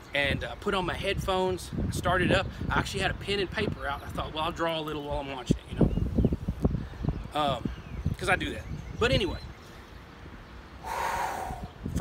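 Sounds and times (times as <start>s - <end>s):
man breathing in through mouth: 10.8s - 11.7s.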